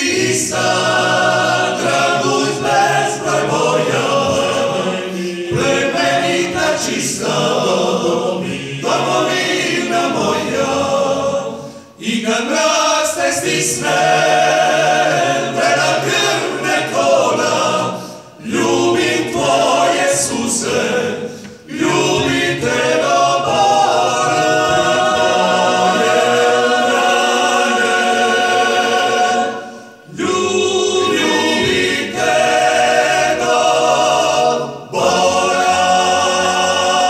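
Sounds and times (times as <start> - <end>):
male vocal ensemble singing a cappella: 0.0 - 37.0.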